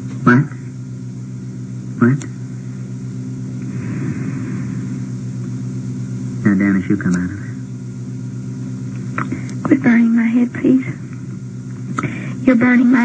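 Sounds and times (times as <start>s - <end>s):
electrical hum: 0.0s - 13.0s.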